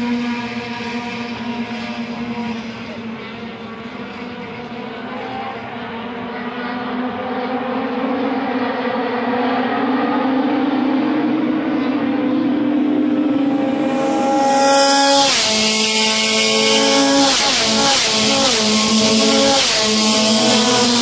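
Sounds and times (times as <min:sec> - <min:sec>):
race car engines: 0:00.0 - 0:21.0.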